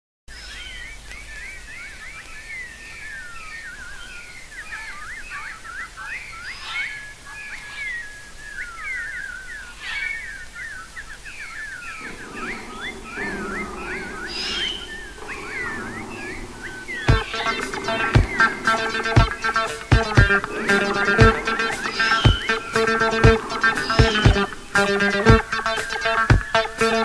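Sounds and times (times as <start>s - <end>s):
birds chirping and singing: 0.3s - 27.0s
low sustained music tones: 11.9s - 27.0s.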